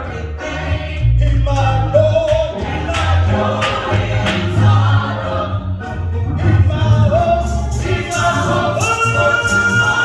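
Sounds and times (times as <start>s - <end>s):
gospel singing: 0.0s - 10.0s
instrumental accompaniment: 0.0s - 10.0s
steady bass: 0.0s - 10.0s.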